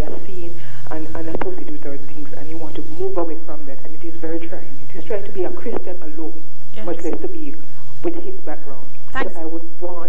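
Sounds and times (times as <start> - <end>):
person talking: 0.0 - 10.0
steady low hum: 0.0 - 10.0.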